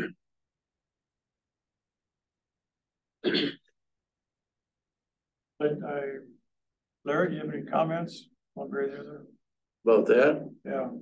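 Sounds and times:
person clearing throat: 0.0 - 0.3, 3.2 - 3.8.

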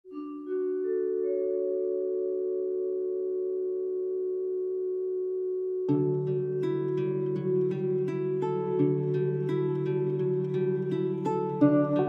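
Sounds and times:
plucked notes: 0.1 - 3.3, 5.9 - 12.0.

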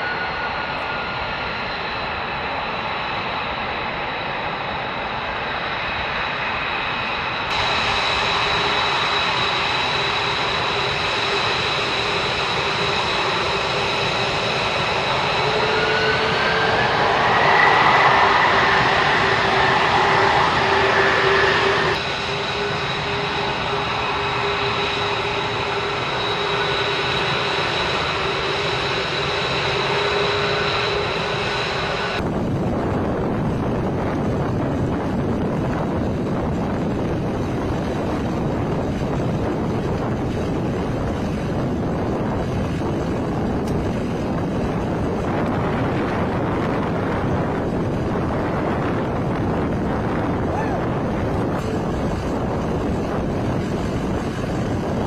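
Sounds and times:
jet fighter engines whining: 0.0 - 55.0.

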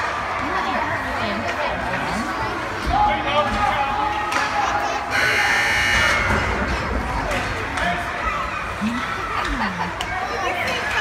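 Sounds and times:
scoreboard buzzer: 5.1 - 6.6.

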